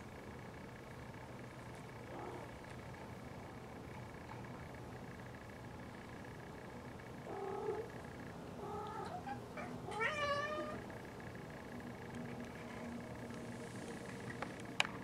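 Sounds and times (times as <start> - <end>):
cat meowing: 8.7 - 10.8.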